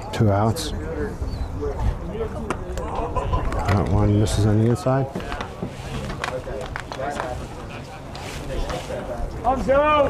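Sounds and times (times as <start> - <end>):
players and spectators chattering: 0.0 - 10.0.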